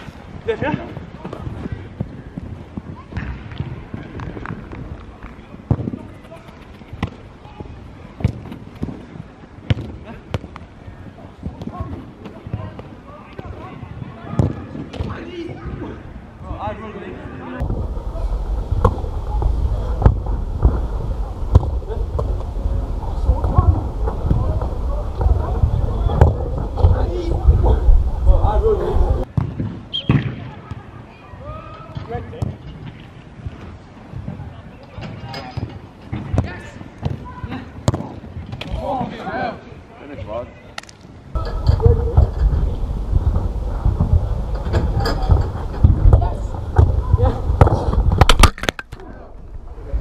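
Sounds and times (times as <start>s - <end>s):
wind buffeting microphone: 0.0s - 9.5s, 17.6s - 29.3s, 41.3s - 48.4s.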